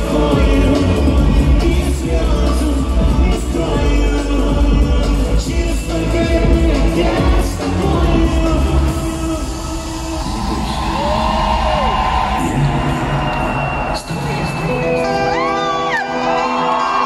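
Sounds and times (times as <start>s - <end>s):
heavy bass beat: 0.0s - 11.9s
male lead vocal: 0.0s - 13.5s
crowd noise: 0.0s - 17.0s
live pop music: 0.0s - 17.0s.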